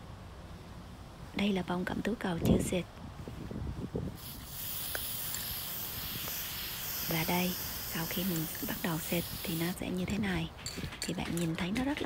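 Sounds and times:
spray paint can hissing: 4.2 - 10.0.

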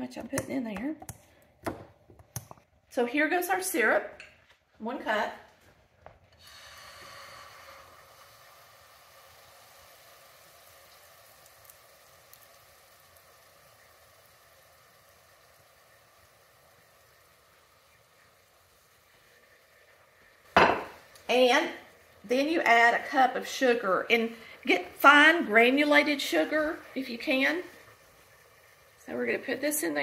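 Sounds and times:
syrup sizzling in a pot: 6.4 - 30.0
sharp knock: 20.6 - 21.0.

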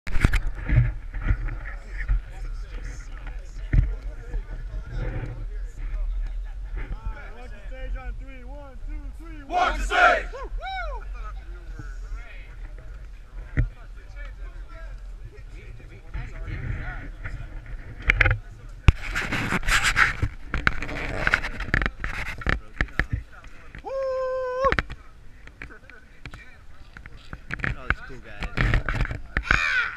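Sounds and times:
people talking: 1.6 - 19.4, 20.8 - 29.8
group calling out: 9.5 - 11.0
man whooping: 9.7 - 11.0, 23.8 - 24.7.

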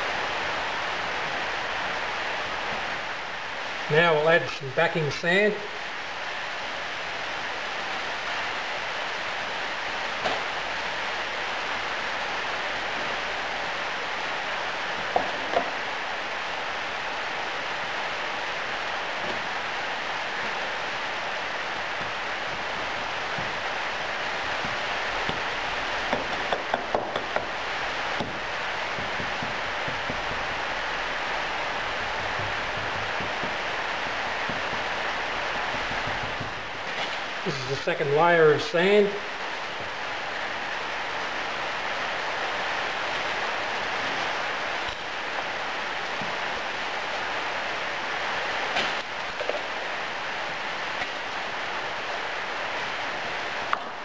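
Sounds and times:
steady hiss: 0.0 - 54.0
wooden rammer knocking sand: 21.9 - 37.7.

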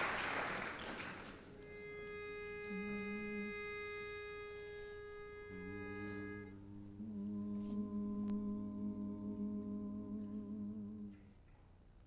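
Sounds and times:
voices humming a chord: 1.5 - 11.6
pitch pipe note: 1.6 - 11.2
brief low hum: 2.5 - 11.8.

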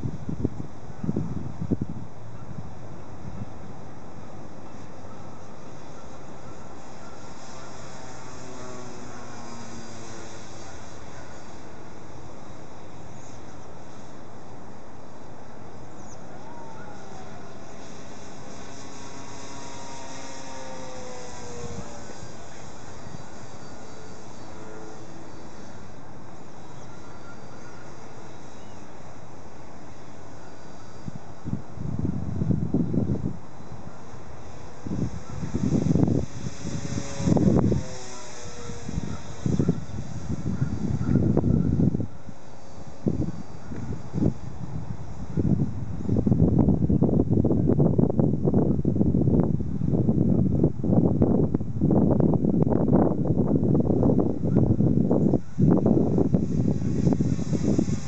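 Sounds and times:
steady hiss: 0.0 - 58.0
wind buffeting microphone: 0.0 - 58.0
model plane motor whine: 3.1 - 58.0.

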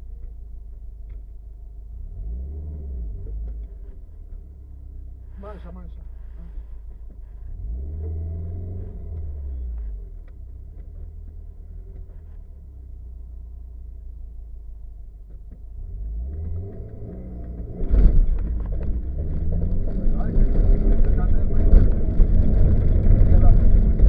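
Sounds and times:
car engine from inside cabin: 0.0 - 24.0.

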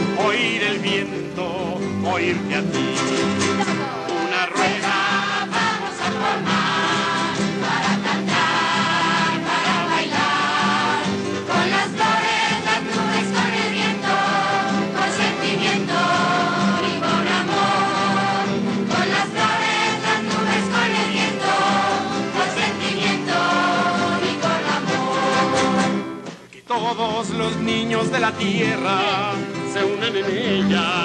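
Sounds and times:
group of voices singing: 0.0 - 26.0
acoustic guitar: 0.0 - 31.0.

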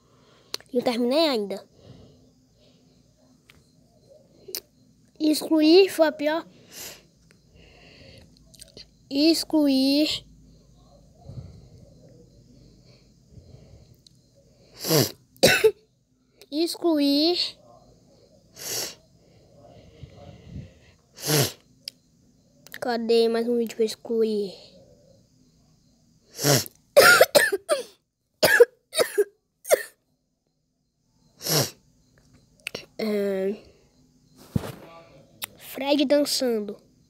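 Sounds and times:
person coughing: 14.9 - 15.8, 27.0 - 30.0.

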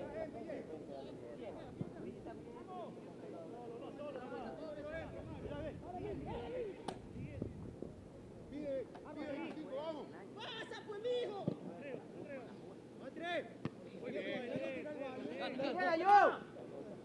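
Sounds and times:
players shouting and calling: 0.0 - 7.2, 8.6 - 17.0.

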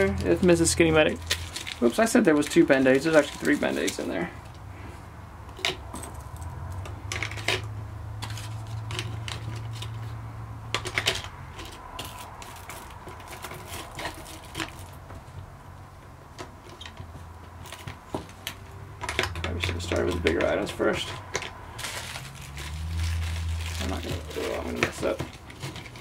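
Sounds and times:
plastic packets rustling: 0.2 - 4.6, 10.8 - 15.0, 19.1 - 26.0.

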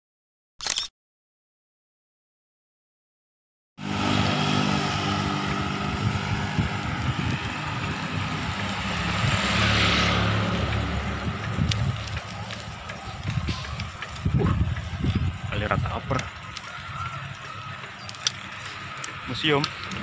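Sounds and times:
motor vehicle running close by: 3.8 - 20.0
street traffic: 3.8 - 20.0
wind on microphone: 4.6 - 17.4.

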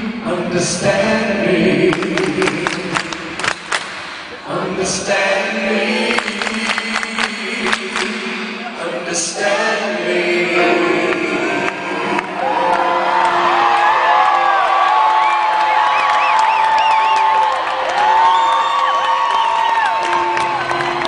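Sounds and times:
large crowd cheering and whooping: 12.2 - 21.0.

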